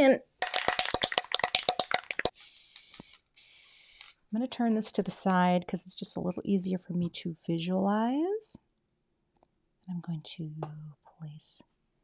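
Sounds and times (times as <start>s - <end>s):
spray can rattling when shaken: 0.4s - 4.2s
spray hissing: 2.2s - 4.2s.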